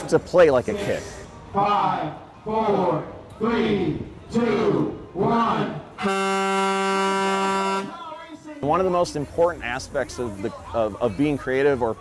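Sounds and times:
race start horn blast: 5.9 - 8.0.

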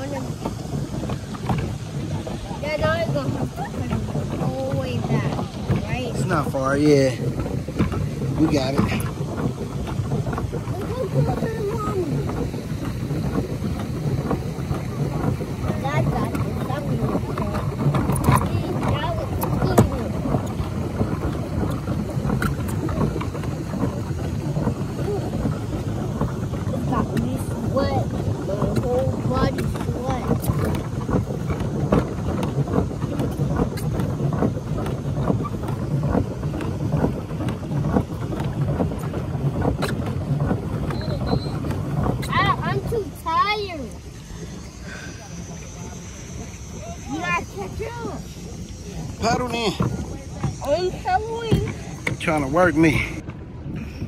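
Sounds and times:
paddle wheel churning water: 0.0 - 54.0
wind on microphone: 0.0 - 54.0.

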